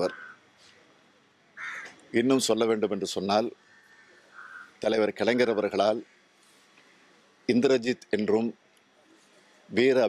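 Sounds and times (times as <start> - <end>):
harsh bird call: 0.0 - 0.4, 3.6 - 4.8
man talking: 2.1 - 3.6, 4.8 - 6.1, 7.5 - 8.6, 9.7 - 10.0.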